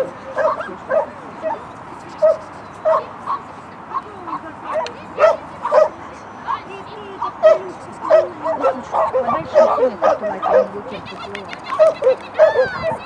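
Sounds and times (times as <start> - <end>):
dog barking in high yips: 2.2 - 3.4, 7.4 - 10.7, 11.6 - 13.0.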